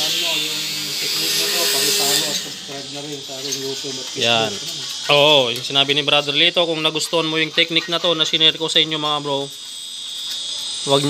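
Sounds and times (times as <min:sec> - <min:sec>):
voices talking: 0:00.0 - 0:09.6
rotary tool grinding whine: 0:00.0 - 0:11.0.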